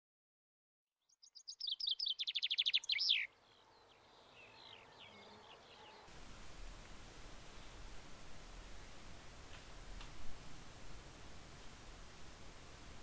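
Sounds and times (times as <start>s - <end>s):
faint bird chirps: 1.0s - 6.1s
songbird singing a trill: 1.0s - 6.1s.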